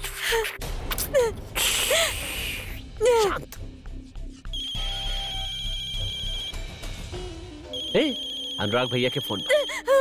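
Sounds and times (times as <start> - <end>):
background music: 0.0 - 10.0
phone ringtone trilling: 4.6 - 6.5, 7.7 - 9.8.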